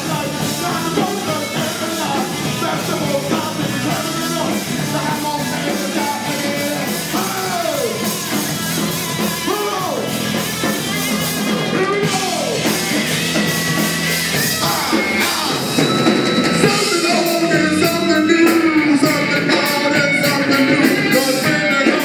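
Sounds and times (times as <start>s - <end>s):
drum kit: 0.0s - 22.0s
live funk band playing: 0.0s - 22.0s
lead line rising and falling: 11.8s - 19.0s.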